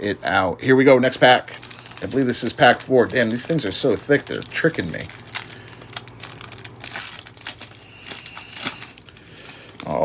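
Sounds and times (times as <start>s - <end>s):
foil wrapper crinkling and tearing: 0.0s - 10.0s.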